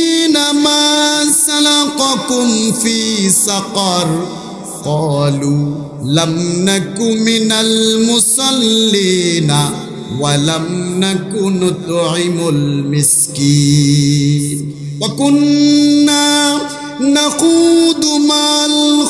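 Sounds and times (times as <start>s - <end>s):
man chanting through microphones: 0.0s - 19.0s.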